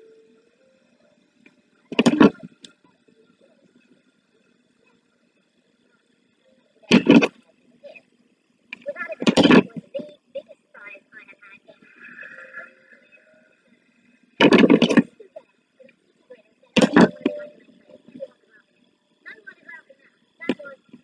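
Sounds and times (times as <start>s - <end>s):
faint television voices: 0.0s - 21.0s.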